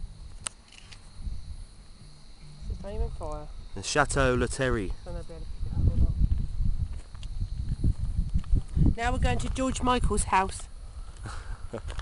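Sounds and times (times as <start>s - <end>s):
sharp click: 0.4s - 1.1s
wind on microphone: 1.1s - 12.0s.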